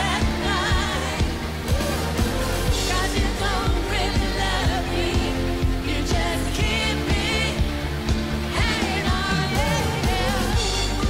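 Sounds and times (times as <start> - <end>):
woman singing: 0.0 - 1.7, 2.7 - 7.8, 8.5 - 11.0
live pop band playing: 0.0 - 11.0
steady drum beat: 0.0 - 11.0.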